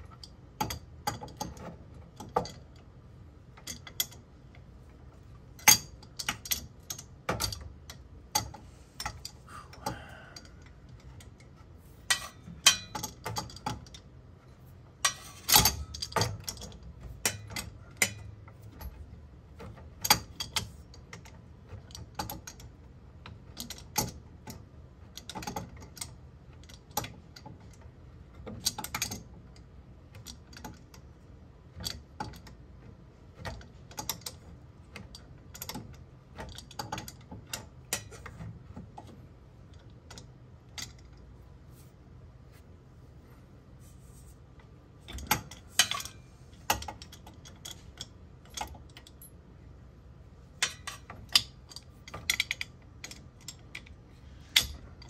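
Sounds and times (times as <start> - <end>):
steel wrenches clinking: 12.0 - 14.0, 15.0 - 19.0, 45.0 - 49.3, 50.6 - 55.0.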